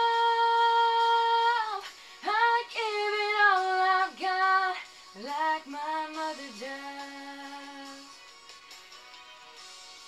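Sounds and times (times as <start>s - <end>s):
woman singing: 0.0s - 8.1s.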